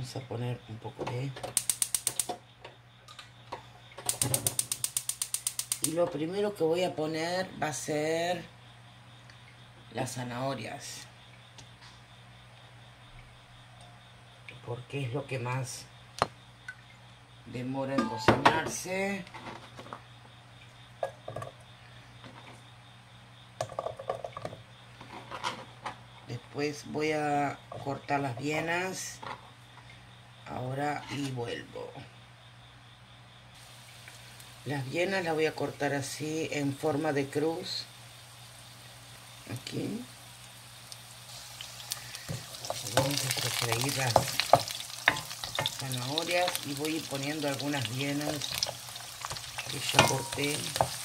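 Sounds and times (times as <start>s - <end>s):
gas stove igniter clicking: 1.5s - 2.4s, 4.0s - 6.0s
carrot slices tapping in wok: 42.2s - 47.2s, 48.4s - 51.0s.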